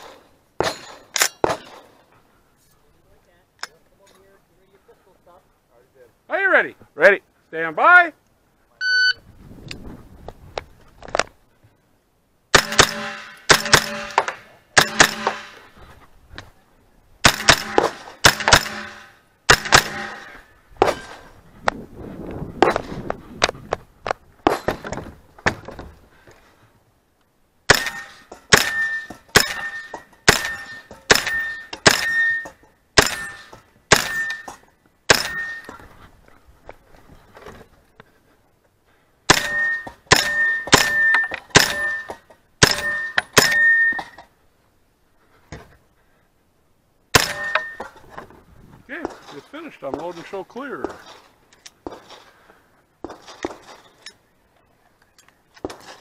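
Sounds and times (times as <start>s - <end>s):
shot timer beep: 8.8s - 9.2s
gunshots: 12.5s - 15.7s, 17.2s - 21.2s, 27.7s - 32.4s, 33.0s - 34.5s, 35.1s - 35.6s, 39.3s - 44.0s, 47.1s - 47.8s.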